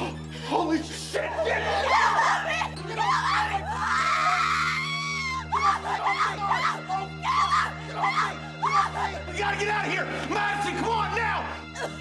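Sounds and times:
woman screaming in terror: 0:01.7 - 0:09.2.

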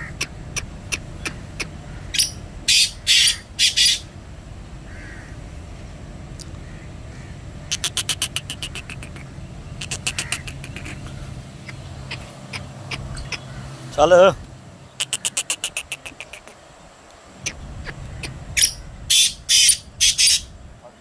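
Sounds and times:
francolin harsh calls: 0:00.0 - 0:04.1, 0:06.6 - 0:16.7, 0:17.4 - 0:20.5.

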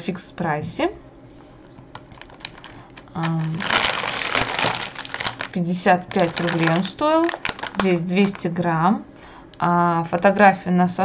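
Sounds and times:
plastic bag crinkling: 0:01.9 - 0:08.6.

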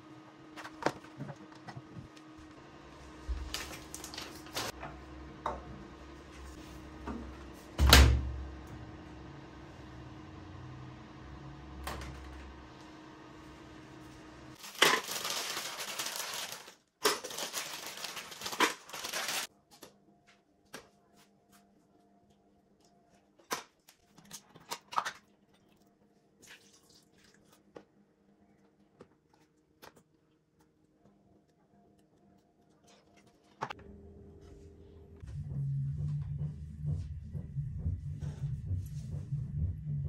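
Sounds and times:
laundry handled at washing machine: 0:03.0 - 0:08.4
plastic bag rustling: 0:03.3 - 0:04.7, 0:14.6 - 0:19.5
steady low hum: 0:33.8 - 0:40.0.

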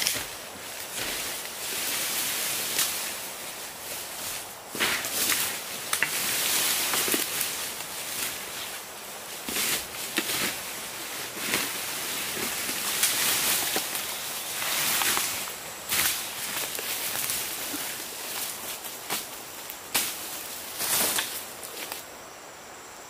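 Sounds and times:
footsteps crunching through dry leaves: 0:00.0 - 0:22.1
bamboo pole snapping and knocking: 0:04.8 - 0:06.2.

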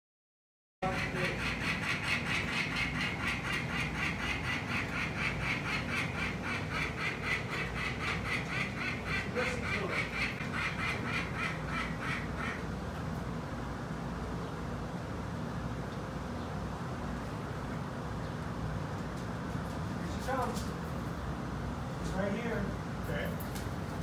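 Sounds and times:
falcon harsh alarm calls: 0:00.8 - 0:12.7.

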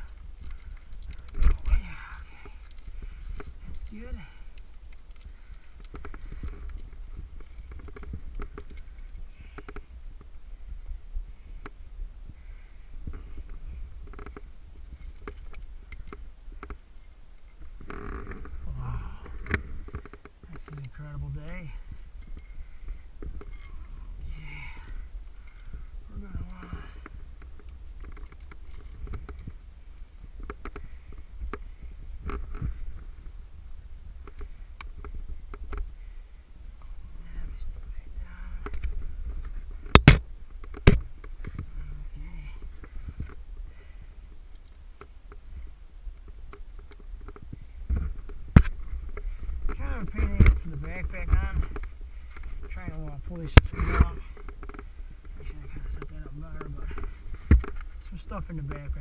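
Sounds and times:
muffled grunts and breathing: 0:00.0 - 0:04.6, 0:18.5 - 0:19.9, 0:20.6 - 0:27.2, 0:41.5 - 0:44.1
metallic clicks of carabiners: 0:00.0 - 0:10.3, 0:14.0 - 0:18.6, 0:19.2 - 0:25.8, 0:26.4 - 0:32.8
steady low rumble: 0:00.0 - 0:59.0.

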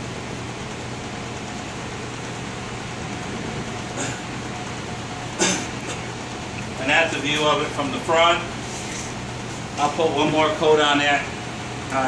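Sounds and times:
ventilation fan running: 0:00.0 - 0:12.0.

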